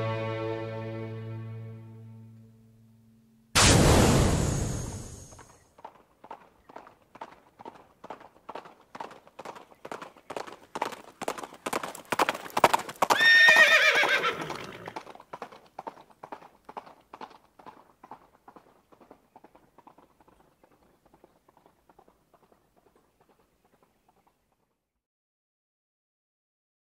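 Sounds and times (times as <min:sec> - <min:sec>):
horse hoofbeats clip-clop: 0:05.4 - 0:25.0
horse whinny: 0:13.1 - 0:15.0.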